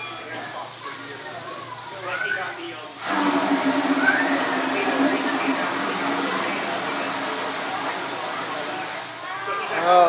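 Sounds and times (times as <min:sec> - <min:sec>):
indoor crowd hubbub: 0:00.0 - 0:10.0.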